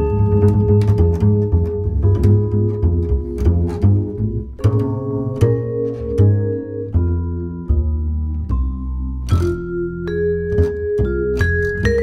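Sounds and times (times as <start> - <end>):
plucked double bass notes: 0.0 - 12.0
vibraphone tones: 4.6 - 12.0.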